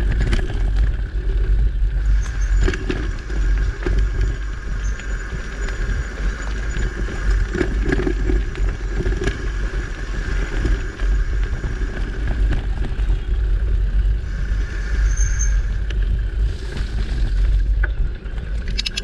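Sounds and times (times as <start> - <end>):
clicks and rattles of stones: 0.0 - 14.1, 15.4 - 19.0
bike tyres rumbling on dirt: 0.0 - 19.0.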